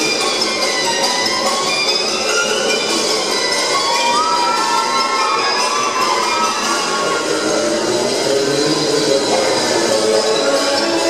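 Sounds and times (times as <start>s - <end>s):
music: 0.0s - 11.0s
spectators cheering and shouting: 3.4s - 11.0s
long whoops: 3.9s - 7.5s.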